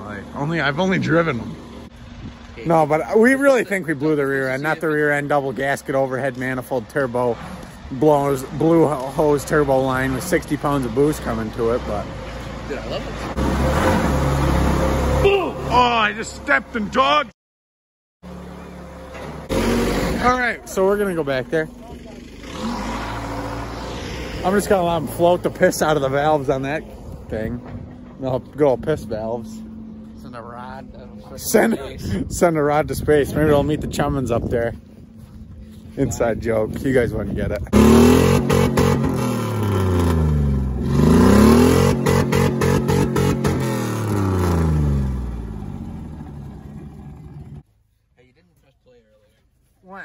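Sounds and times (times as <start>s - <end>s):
vehicle engine humming: 0.0s - 17.3s, 18.2s - 47.9s.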